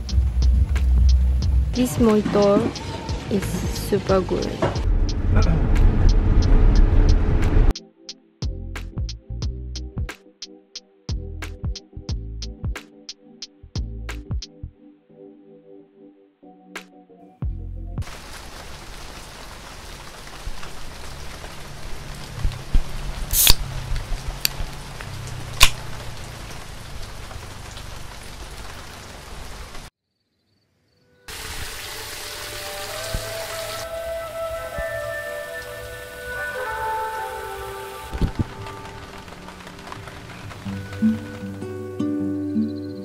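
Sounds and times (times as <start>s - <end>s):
rain falling: 0.0s - 7.7s, 18.0s - 29.9s, 31.3s - 42.2s
soft background music: 0.0s - 18.0s, 31.2s - 43.0s
sharp cracks: 23.3s - 27.8s.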